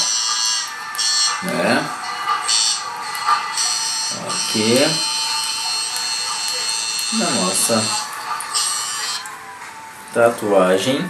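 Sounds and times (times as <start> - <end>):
tattoo machine buzzing: 0.0 - 9.3.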